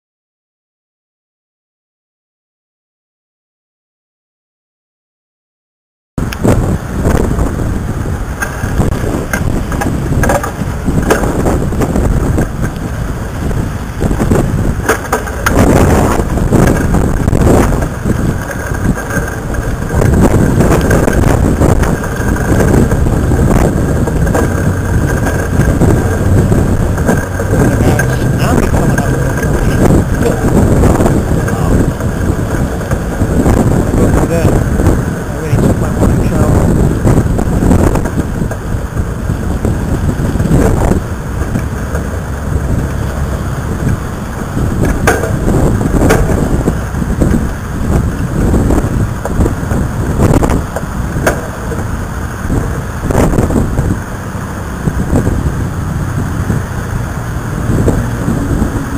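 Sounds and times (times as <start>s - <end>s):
road traffic: 6.2s - 58.9s
wind buffeting microphone: 6.2s - 58.9s.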